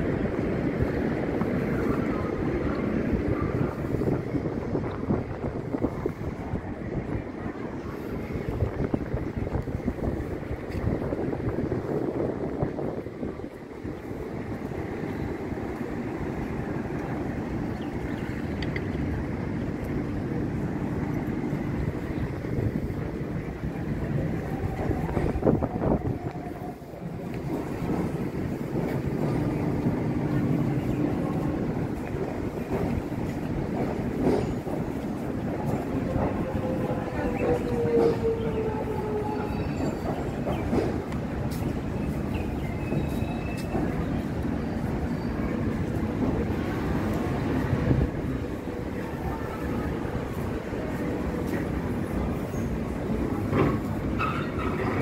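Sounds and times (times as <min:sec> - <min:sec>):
train wheels rumbling on track: 0:00.0 - 0:55.0.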